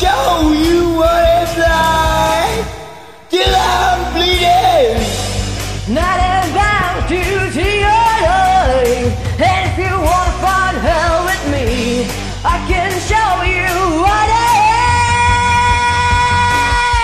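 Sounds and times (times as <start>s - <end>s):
hard rock drums and bass: 0.0s - 17.0s.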